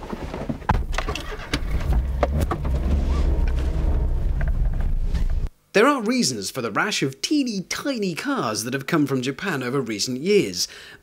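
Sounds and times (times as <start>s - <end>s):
small car engine starting and running: 0.8s - 5.5s.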